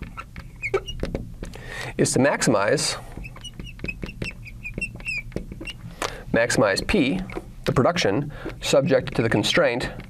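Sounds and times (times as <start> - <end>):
marker squeaking on glass: 0.0 - 1.4, 2.2 - 7.5
marker tip tapping glass: 3.2 - 5.8.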